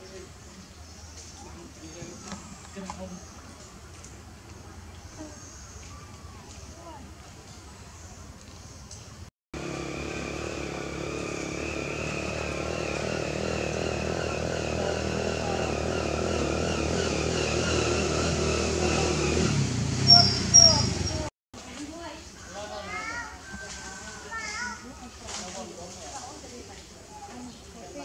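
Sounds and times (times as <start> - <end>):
motor engine running: 9.6 - 21.3
high-pitched squeals: 20.0 - 21.3.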